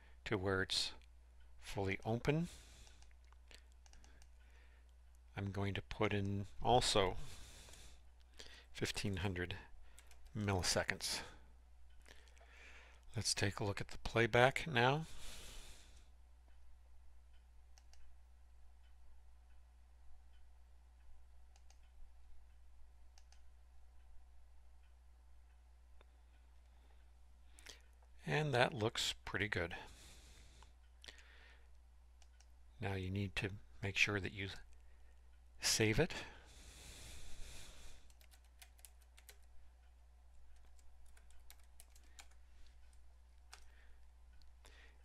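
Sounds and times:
low steady hum: 0.0 - 45.0
computer keyboard typing: 3.7 - 4.4, 10.0 - 10.4, 38.0 - 39.6, 40.4 - 43.7.

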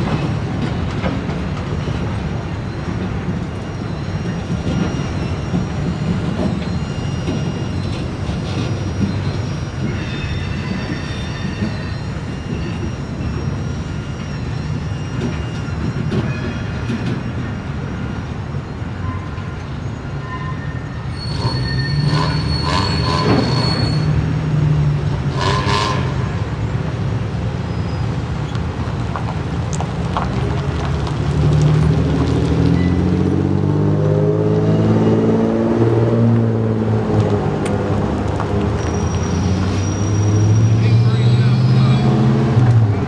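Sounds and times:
steel wheels squealing on rail: 0.0 - 29.2, 32.6 - 33.5, 38.1 - 43.0
train rumbling past: 0.0 - 43.0.

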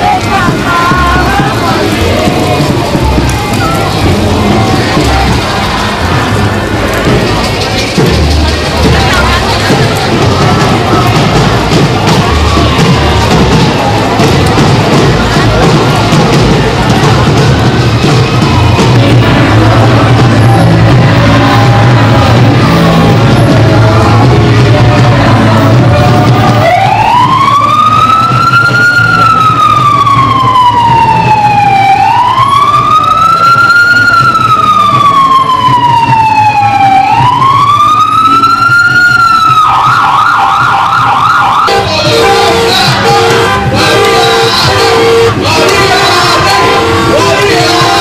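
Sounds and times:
emergency vehicle siren: 0.0 - 48.0
music: 0.0 - 48.0.

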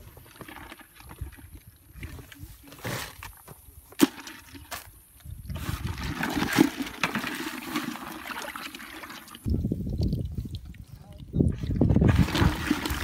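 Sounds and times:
muddy water sloshing: 0.0 - 3.2, 3.9 - 13.0.

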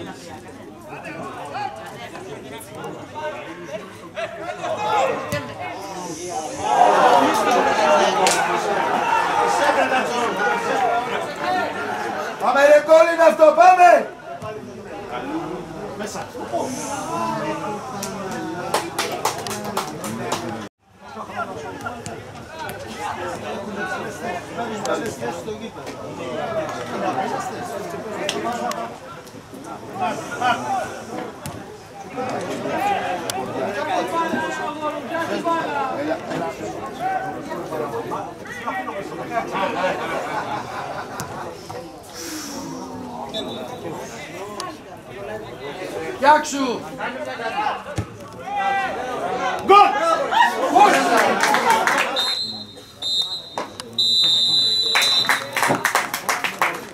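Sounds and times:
crowd chatter and calling out: 0.0 - 56.9
voices: 0.0 - 56.9
people clapping: 7.4 - 8.6, 18.0 - 20.7, 50.7 - 52.6, 53.6 - 56.9
referee's whistle blast: 43.3 - 43.8, 52.1 - 55.5.

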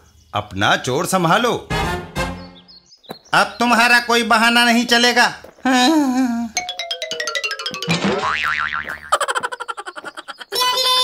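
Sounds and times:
cartoon boing sound effect: 7.6 - 9.2.

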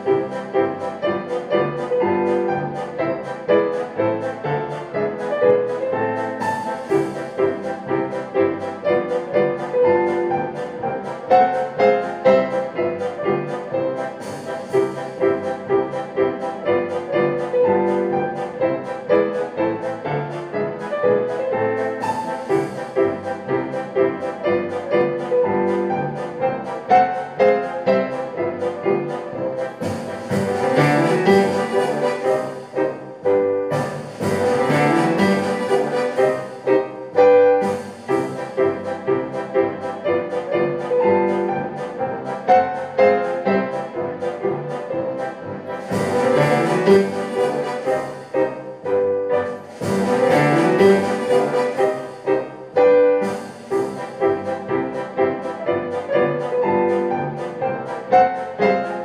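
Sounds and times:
digital piano playing fast classical piece: 0.0 - 59.0
sustained string and brass tones: 0.0 - 59.0.

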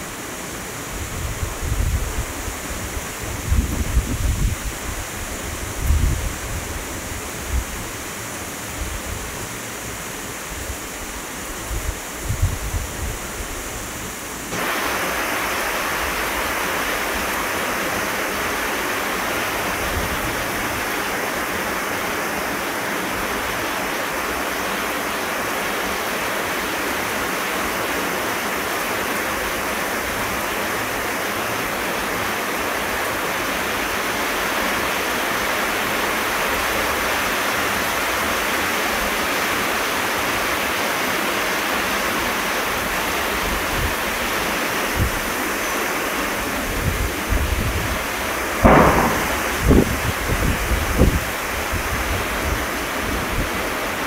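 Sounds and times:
heavy rain on foliage: 0.0 - 54.0
wind gusting on microphone: 0.8 - 7.9, 11.5 - 13.9, 48.6 - 53.5.

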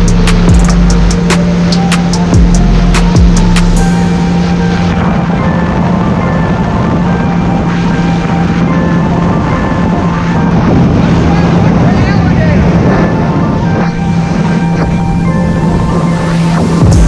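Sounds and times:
jet ski engine running: 0.0 - 17.0
music: 0.0 - 17.0.

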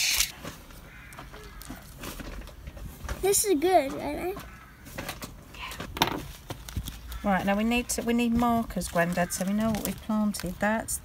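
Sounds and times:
paper packets rustling and clicking: 0.1 - 11.0.

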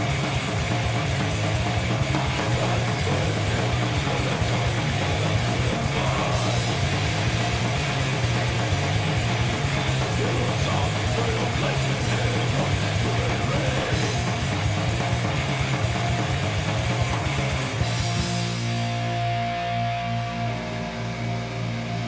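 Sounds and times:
distorted electric guitars: 0.0 - 22.0
fast driving drums: 0.0 - 22.0.

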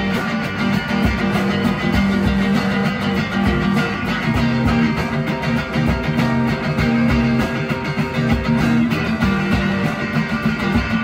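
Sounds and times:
low drum beats: 0.0 - 11.0
plucked strings: 0.0 - 11.0.

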